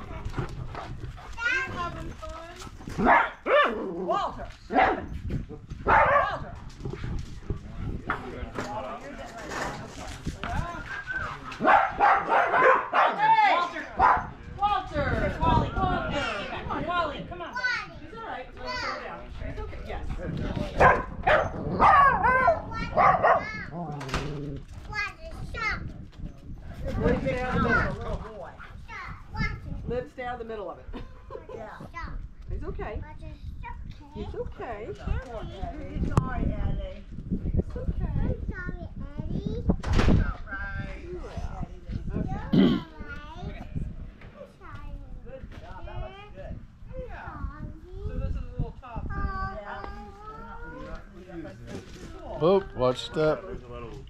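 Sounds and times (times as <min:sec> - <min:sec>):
children playing: 0:00.0 - 0:03.2, 0:15.0 - 0:19.3, 0:20.3 - 0:30.0, 0:30.9 - 0:36.6, 0:42.1 - 0:48.3, 0:49.0 - 0:51.4
child's high voice: 0:01.4 - 0:02.1, 0:22.4 - 0:23.8
dogs barking: 0:03.0 - 0:03.9, 0:05.8 - 0:06.4, 0:11.6 - 0:13.2, 0:13.9 - 0:14.4, 0:20.8 - 0:23.6
people's voices: 0:03.8 - 0:54.0
people talking: 0:40.2 - 0:52.7.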